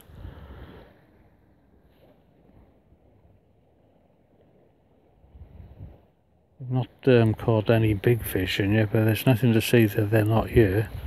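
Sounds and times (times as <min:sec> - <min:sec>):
wind rumble on microphone: 0:00.0 - 0:06.3, 0:07.2 - 0:09.1, 0:09.8 - 0:11.0
flowing river: 0:00.0 - 0:11.0.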